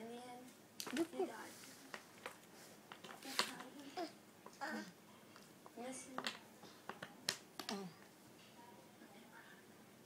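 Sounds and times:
cards tapping on floor mat: 6.1s - 7.8s.

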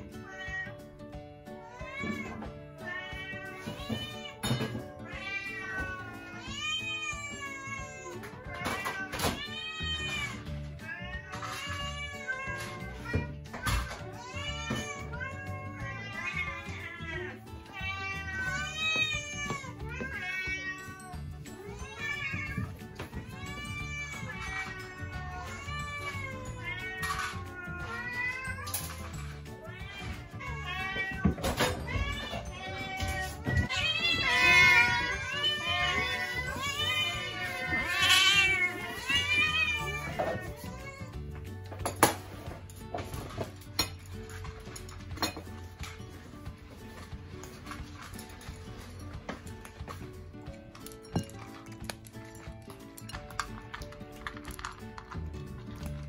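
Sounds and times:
background music: 0.0s - 56.0s
cats meowing: 0.0s - 56.0s.

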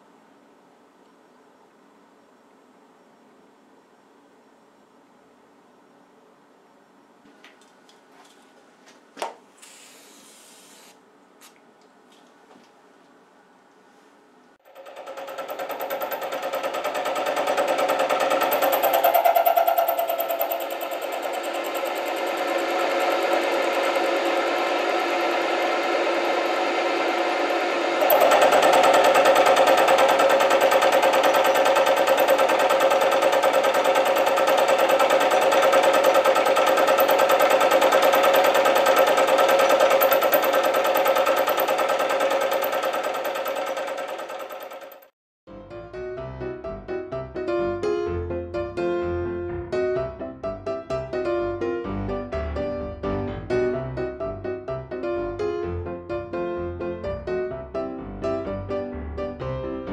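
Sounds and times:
milling machine cutting metal: 14.7s - 45.1s.

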